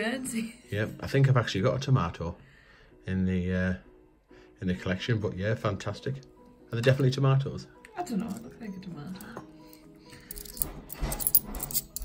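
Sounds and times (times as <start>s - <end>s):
coins clinking: 9.1s - 12.0s.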